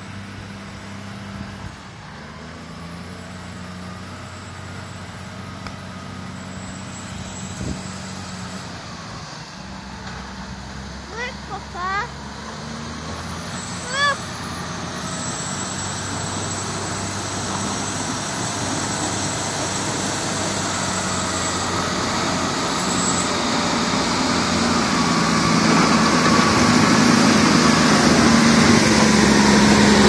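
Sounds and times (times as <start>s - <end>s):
snow plow diesel engine passing: 0.0s - 30.0s.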